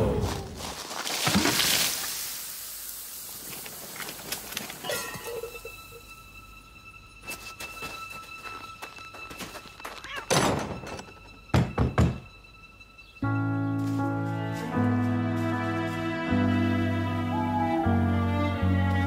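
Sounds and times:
thuds and clatter: 0:10.3 - 0:12.2.

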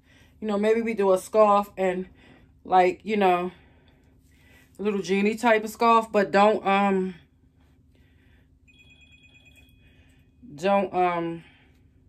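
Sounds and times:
phone ringtone pulsing: 0:08.7 - 0:10.5.

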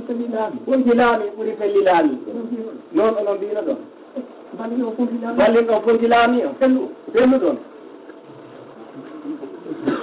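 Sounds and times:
man speaking over public address: 0:00.0 - 0:07.7.

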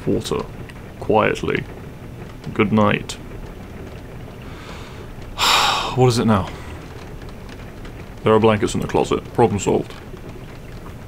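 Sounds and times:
man huffing: 0:05.4 - 0:06.0.

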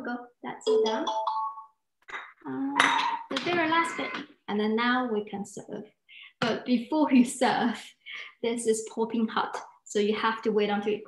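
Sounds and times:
woman speaking: 0:02.7 - 0:11.0.

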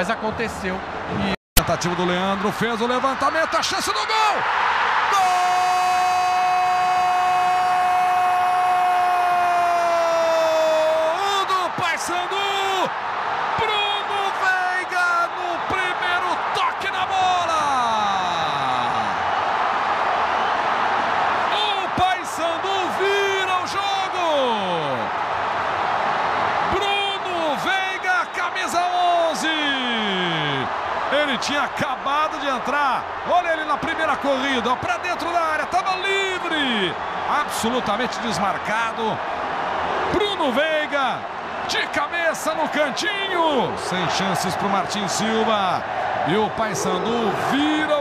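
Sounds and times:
excited play-by-play commentary: 0:00.0 - 0:04.5, 0:09.3 - 0:12.9, 0:13.5 - 0:19.2, 0:21.5 - 0:25.1, 0:26.6 - 0:39.2, 0:40.1 - 0:48.0
stadium crowd cheering: 0:00.0 - 0:48.0
commentator shouting goal: 0:13.6 - 0:19.2, 0:21.5 - 0:25.1.

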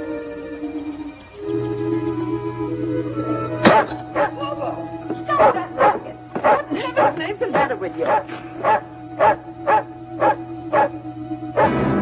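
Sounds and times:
music underscore: 0:00.0 - 0:12.0
dog barking: 0:03.7 - 0:04.4, 0:05.4 - 0:07.2, 0:08.0 - 0:11.0.

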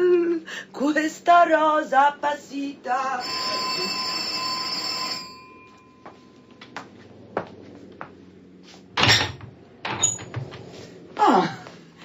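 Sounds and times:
electric doorbell ringing: 0:03.2 - 0:06.5.

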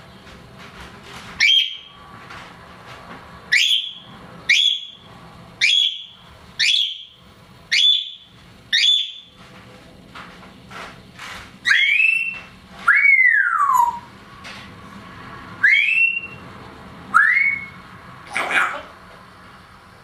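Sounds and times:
parrot whistling upward: 0:01.4 - 0:01.9, 0:03.5 - 0:05.0, 0:05.6 - 0:09.3, 0:11.6 - 0:14.1, 0:15.6 - 0:16.4, 0:17.1 - 0:17.8.

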